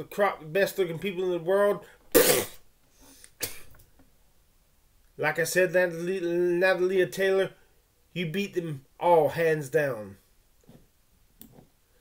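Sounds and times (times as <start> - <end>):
man coughing: 3.4 - 3.8.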